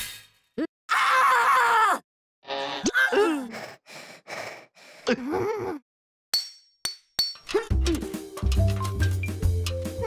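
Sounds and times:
metal stepladder clinking: 6.9 - 9.9
music: 7.5 - 10.0.

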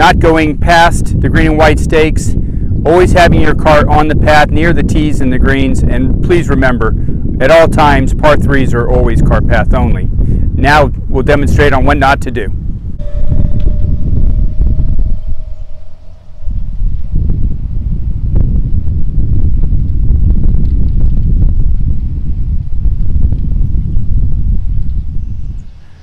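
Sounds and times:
wind rumble on microphone: 0.0 - 26.0.

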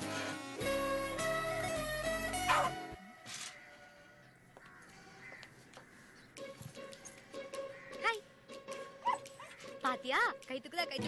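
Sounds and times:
dog barking: 9.0 - 9.5
woman's voice: 9.8 - 11.0.

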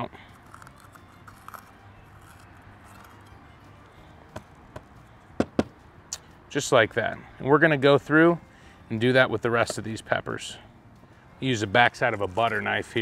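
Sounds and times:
knife scraping peppers: 0.3 - 3.3.

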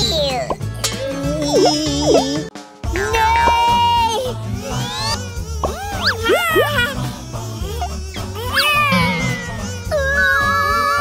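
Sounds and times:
squeaky cartoon voice: 0.0 - 0.5, 1.3 - 4.0, 4.7 - 6.9, 8.1 - 10.6
background music with bass: 0.0 - 11.0.

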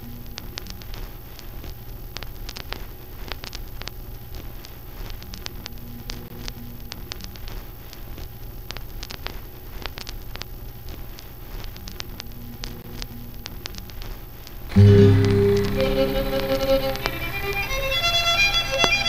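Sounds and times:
film crackle and pops: 0.0 - 19.0
steady low hum: 0.0 - 19.0
faint held tones: 14.7 - 19.0.

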